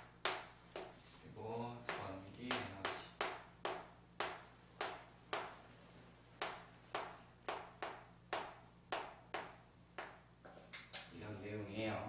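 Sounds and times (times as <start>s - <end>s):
chalk tapping and scraping on chalkboard: 0.0s - 5.6s, 6.4s - 11.8s.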